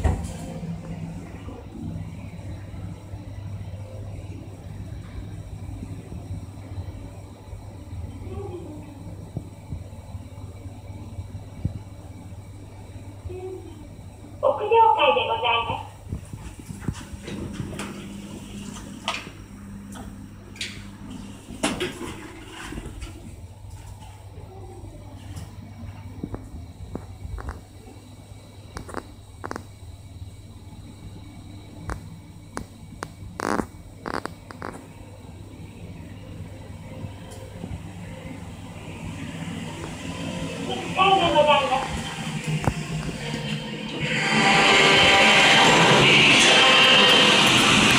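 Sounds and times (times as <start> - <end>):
elevator door motor humming: 0.0 - 47.9.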